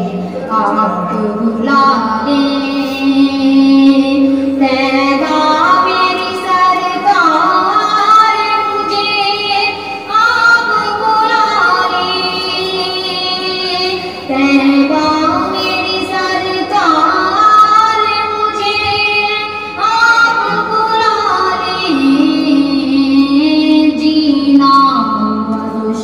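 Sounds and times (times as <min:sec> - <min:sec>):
woman singing devotional song: 0:00.0 - 0:26.0.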